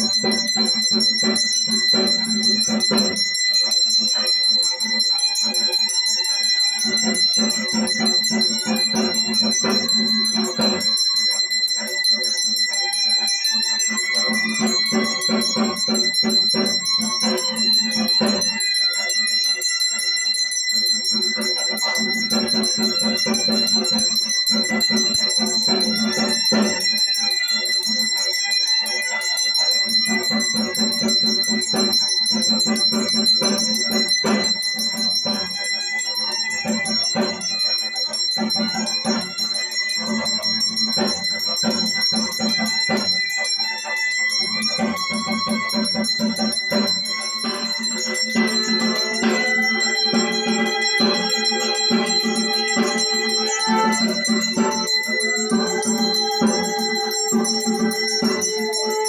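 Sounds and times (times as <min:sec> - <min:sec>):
brass hand bell ringing: 0:00.0 - 0:59.0.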